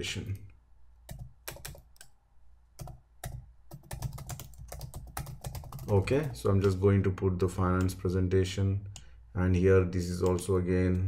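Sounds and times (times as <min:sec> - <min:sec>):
keyboard typing: 0:01.1 - 0:02.2, 0:02.8 - 0:06.9.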